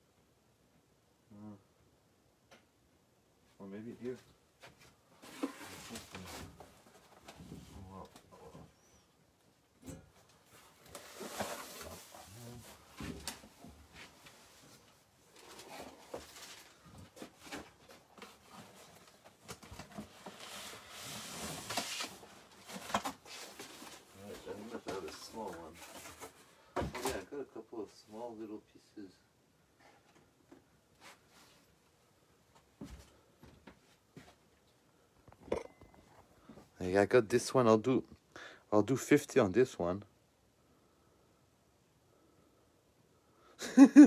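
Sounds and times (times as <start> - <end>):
rustling and scraping boxes: 4.1 - 8.9, 10.1 - 27.3.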